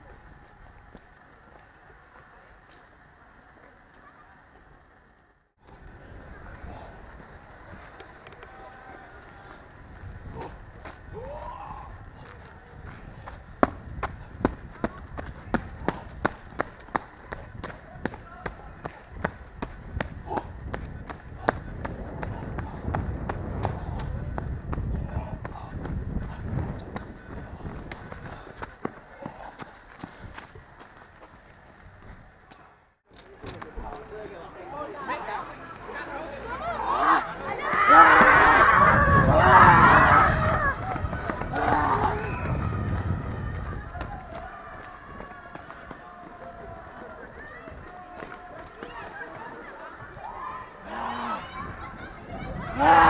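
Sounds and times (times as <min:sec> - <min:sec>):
rumble of movement against camera: 0:00.0 - 0:34.1
running footsteps: 0:00.0 - 0:53.0.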